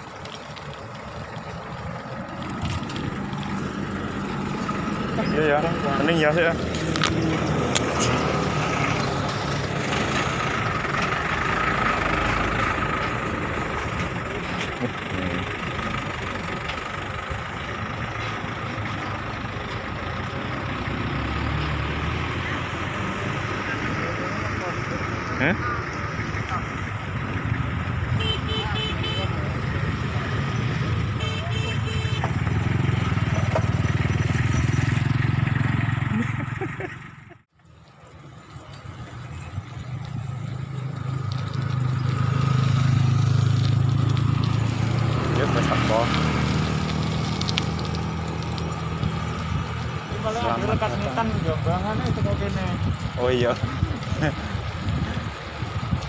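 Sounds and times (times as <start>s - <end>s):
low engine rumble: 0.0s - 56.0s
motor vehicle running: 0.0s - 56.0s.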